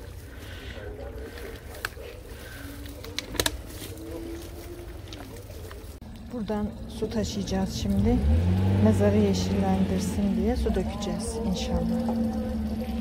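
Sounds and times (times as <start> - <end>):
faint voices: 0.0 - 13.0.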